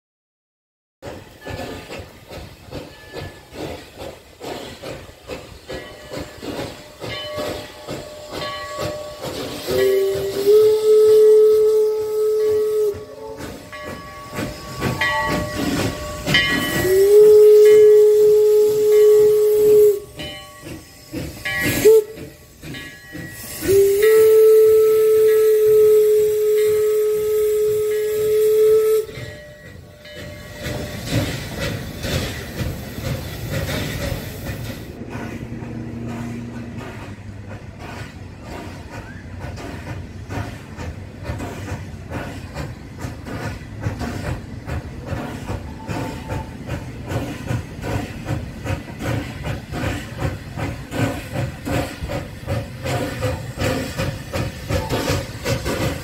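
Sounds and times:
hissing steam: 1.0s - 56.0s
steam locomotive chuffing: 1.0s - 56.0s
train wheel clatter: 1.0s - 56.0s
steam whistle blasts: 7.5s - 22.7s, 23.3s - 29.5s.

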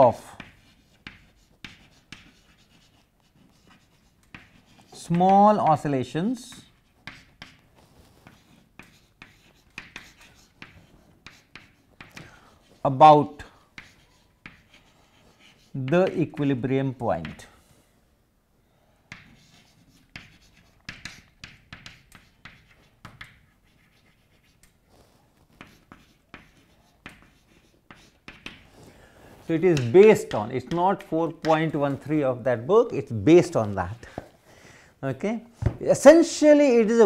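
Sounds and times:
chalk scratching on blackboard: 0.3s - 5.2s, 6.5s - 13.0s, 13.7s - 16.5s, 19.1s - 32.0s
chalk tapping on blackboard: 0.4s - 5.4s, 6.5s - 12.8s, 13.7s - 16.5s, 17.2s - 17.5s, 19.1s - 24.8s, 25.5s - 28.7s, 29.5s - 31.8s.

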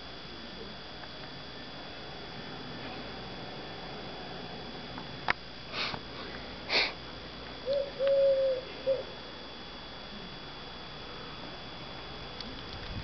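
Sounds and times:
short sniffs: 5.7s - 7.0s
dove cooing: 7.6s - 9.2s.

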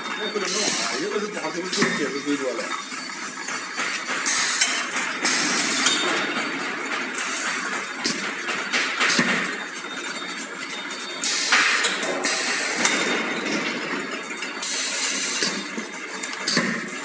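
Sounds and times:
machine metal clattering: 0.0s - 17.0s.

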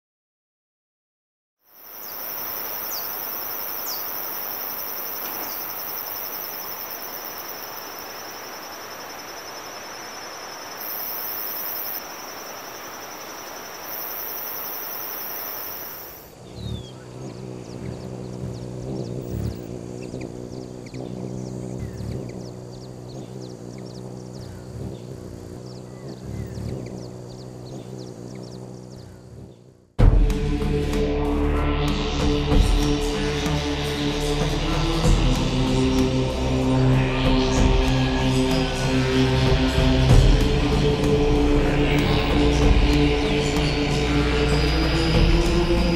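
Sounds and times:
high insect drone: 1.6s - 29.6s, 30.4s - 45.9s
background hiss: 1.7s - 16.4s
high-pitched buzz: 1.7s - 16.4s
bird chirps: 1.9s - 11.0s.

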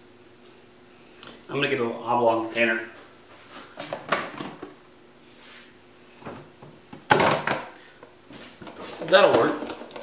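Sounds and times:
plastic container clatter: 8.6s - 10.0s.

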